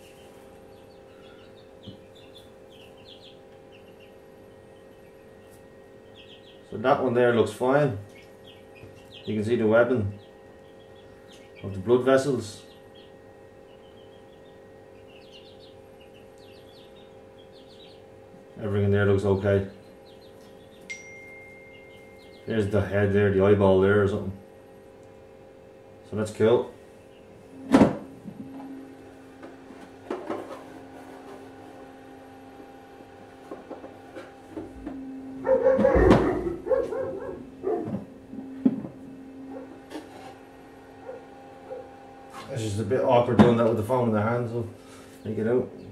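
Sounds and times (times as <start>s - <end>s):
small birds chirping: 0.0s - 27.6s, 31.8s - 45.9s
steady low hum: 0.0s - 45.9s
dogs barking: 35.3s - 38.2s, 39.4s - 39.9s, 40.9s - 42.1s.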